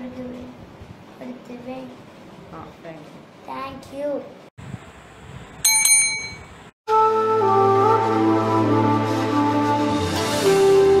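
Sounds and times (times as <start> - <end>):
bright bell rings: 5.6 - 6.6
music: 6.9 - 11.0.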